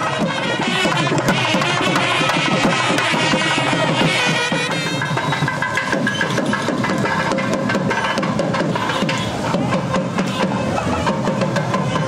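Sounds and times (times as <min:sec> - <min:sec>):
rapid drum strokes: 0:00.0 - 0:12.0.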